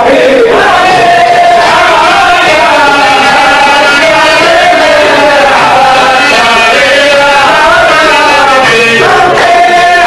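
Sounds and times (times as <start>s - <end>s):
men singing in chorus: 0.0s - 10.0s.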